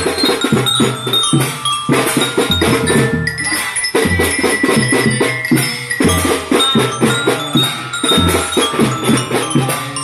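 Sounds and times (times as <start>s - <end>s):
marching drum beats: 0.0s - 10.0s
ringing bell-like melody: 0.0s - 10.0s.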